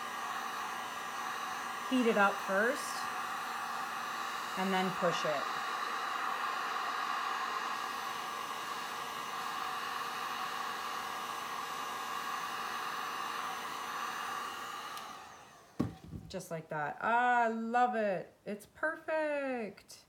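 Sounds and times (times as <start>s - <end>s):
heat gun blowing: 0.0s - 16.4s
knock: 15.8s - 16.3s.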